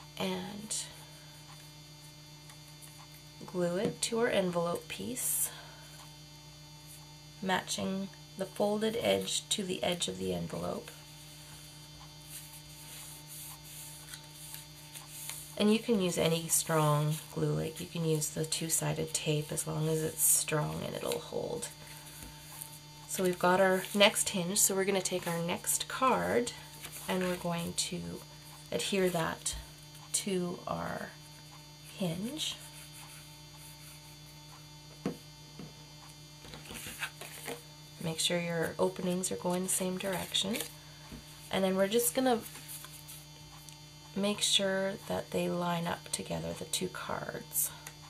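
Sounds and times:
electrical hum: 0.0 - 48.0
card rustling: 18.6 - 27.8, 36.5 - 37.6.

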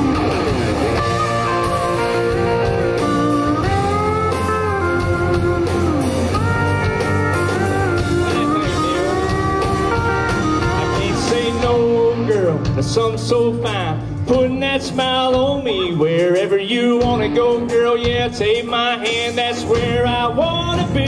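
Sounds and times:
bass: 0.0 - 21.0
drums: 0.0 - 21.0
sliding guitar lead: 0.0 - 21.0.

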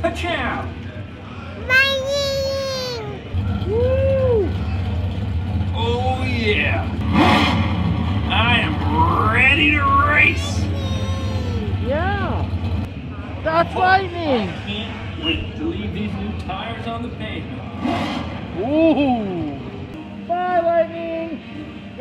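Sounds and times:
toddler calling: 1.7 - 3.3, 10.4 - 11.8.

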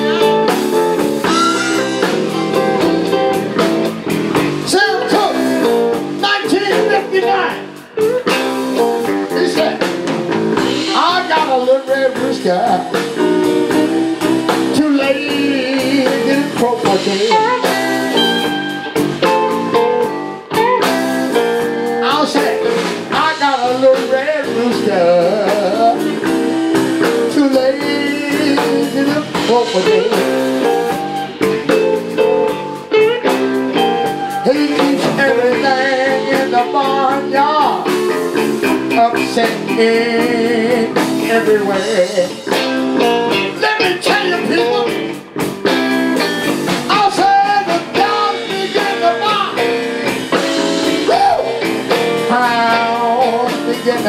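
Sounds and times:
blues band playing: 0.0 - 54.0
man singing into a microphone: 4.7 - 7.8, 9.3 - 9.9, 10.8 - 13.2, 14.6 - 18.0, 22.0 - 26.4, 27.0 - 31.2, 34.2 - 38.0, 38.6 - 42.7, 43.4 - 45.2, 46.9 - 49.8, 51.0 - 54.0.

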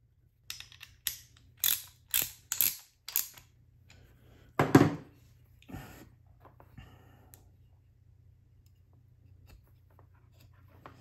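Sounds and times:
small metal parts clicking: 0.4 - 3.6.

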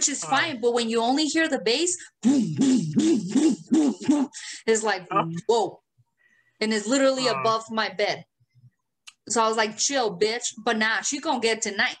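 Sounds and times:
person humming bass beats: 2.2 - 4.3, 7.2 - 7.5.

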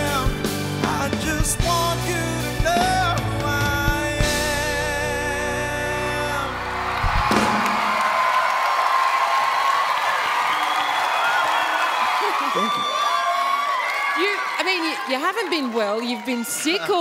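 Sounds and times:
audience cheering and applause: 5.6 - 17.0.

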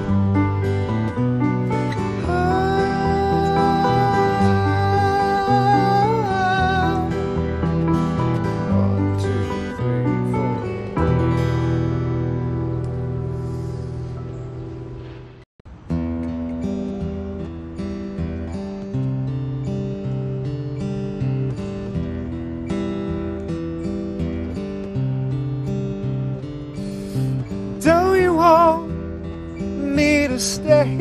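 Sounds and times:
acoustic guitar strumming: 0.0 - 31.0
man singing: 2.0 - 11.0, 27.8 - 29.0, 29.8 - 31.0.

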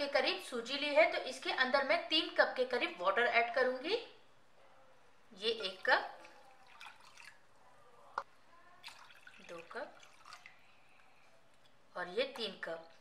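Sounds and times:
water pouring into a bowl: 5.8 - 7.5, 8.8 - 11.1.

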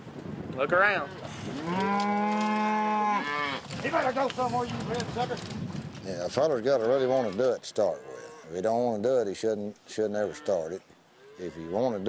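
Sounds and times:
cow mooing: 1.6 - 3.7, 7.2 - 8.6.

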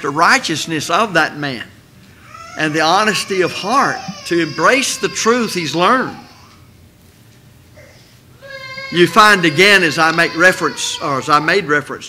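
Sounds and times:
man speaking into a microphone: 0.0 - 1.8, 2.6 - 6.3, 8.9 - 12.0.

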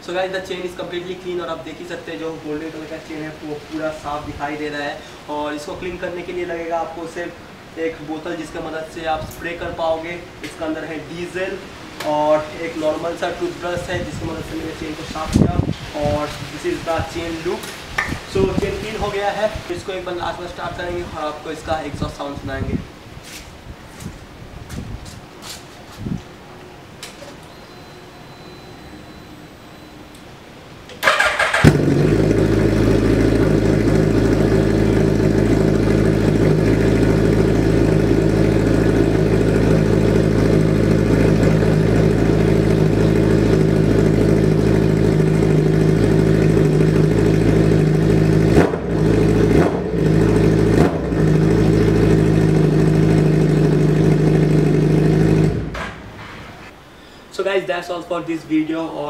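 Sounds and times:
motorcycle engine starting and idling: 30.9 - 56.2.

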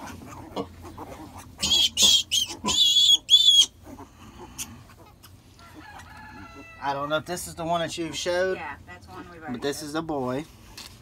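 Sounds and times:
piglets squealing: 0.0 - 7.0.

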